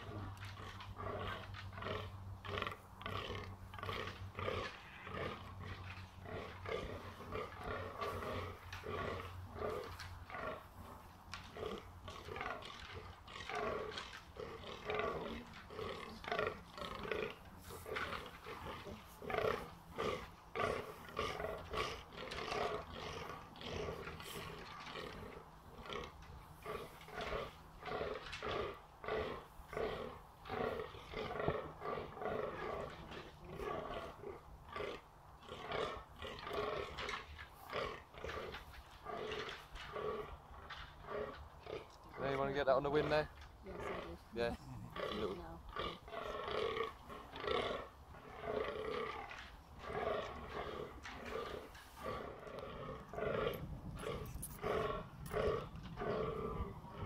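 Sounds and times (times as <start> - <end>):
deer grunting: 0.0 - 57.0.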